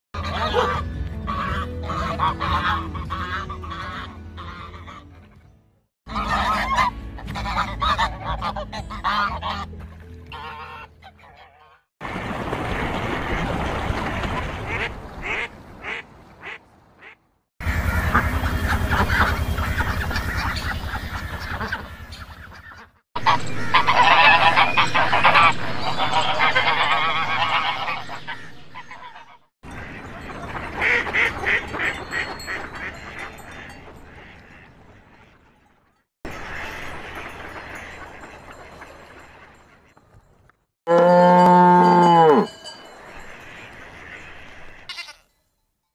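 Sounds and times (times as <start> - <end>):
ducks calling: 0.2 - 5.5, 6.1 - 11.8, 14.2 - 40.3, 42.7 - 45.2
geese honking: 0.2 - 5.5, 6.1 - 11.8, 14.7 - 35.6, 43.0 - 45.2.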